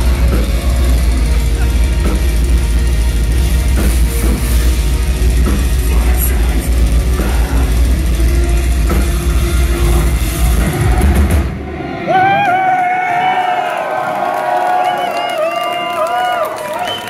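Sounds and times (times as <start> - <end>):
bass guitar: 0.0 - 12.5
distorted electric guitars: 0.0 - 12.9
pounding drum kit: 0.0 - 14.4.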